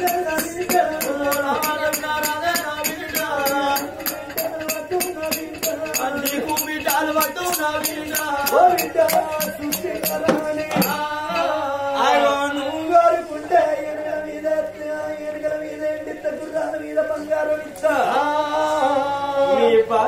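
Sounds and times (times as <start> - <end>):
hand drum beat: 0.0 - 11.5
small hand cymbals: 0.0 - 11.6
voices singing a chant-like melody: 0.0 - 20.0.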